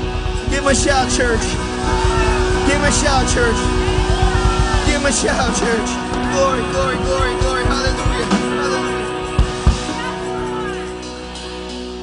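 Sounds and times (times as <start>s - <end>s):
worship band playing: 0.0s - 12.0s.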